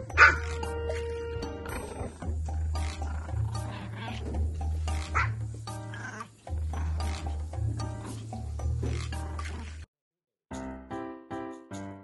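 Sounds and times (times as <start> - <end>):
background music with bass line: 0.0 - 9.8
small dog barking: 0.2 - 0.4.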